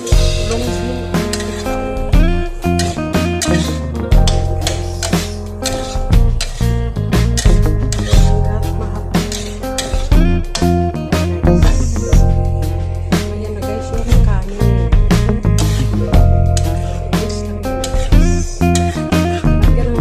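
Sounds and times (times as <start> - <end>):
plucked guitar: 0.0 - 20.0
steady bass line: 0.0 - 20.0.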